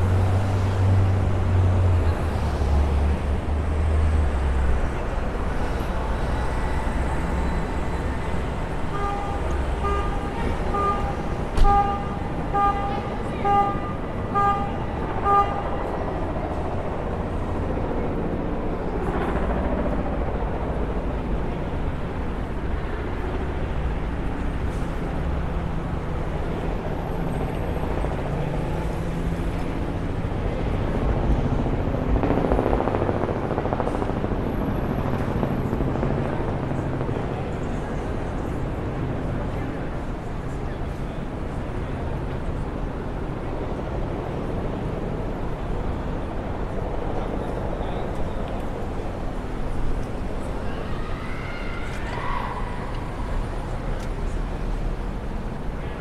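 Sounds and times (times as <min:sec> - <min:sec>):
cars passing by: 0:00.0 - 0:18.9
city street traffic: 0:00.0 - 0:56.0
pedestrian signal beeping: 0:08.8 - 0:15.8.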